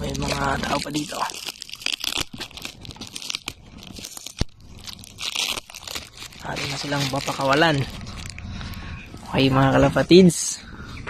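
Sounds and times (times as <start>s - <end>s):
cardboard box tearing and crumpling: 0.0s - 8.4s.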